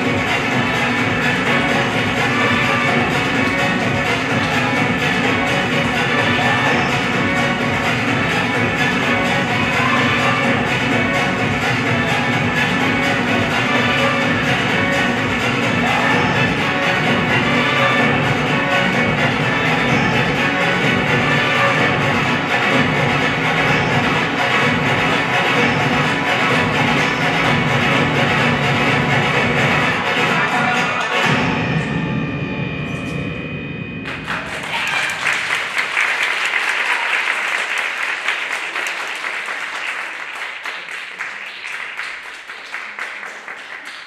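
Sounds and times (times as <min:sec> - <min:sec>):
audience applause: 0:34.1 - 0:44.0.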